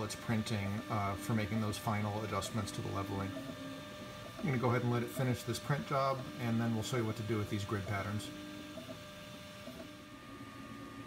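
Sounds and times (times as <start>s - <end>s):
fan and motor whine: 0.0s - 11.0s
printer hum: 0.0s - 11.0s.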